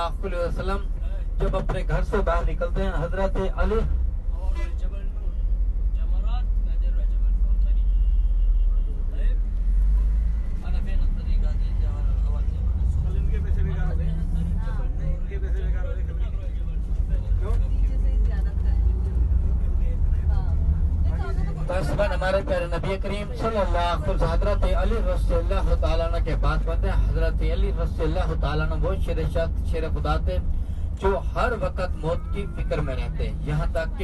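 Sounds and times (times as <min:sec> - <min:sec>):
coach engine rumble: 0:00.0 - 0:34.0
road noise inside vehicle: 0:00.0 - 0:34.0.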